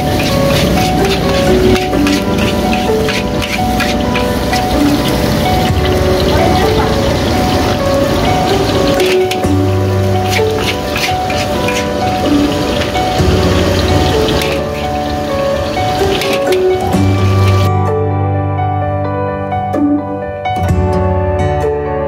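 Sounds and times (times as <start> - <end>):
metal spatula scraping wok: 0.0 - 17.7
wok sizzling: 0.0 - 17.7
melodic background music: 0.0 - 22.0.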